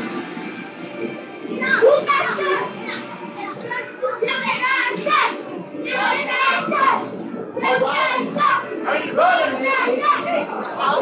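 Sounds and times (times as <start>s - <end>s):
background music: 0.0s - 11.0s
children's voices: 1.5s - 11.0s.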